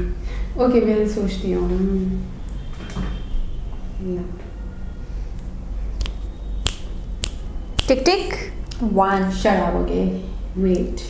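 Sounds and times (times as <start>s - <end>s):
finger snaps: 5.4s - 8.0s.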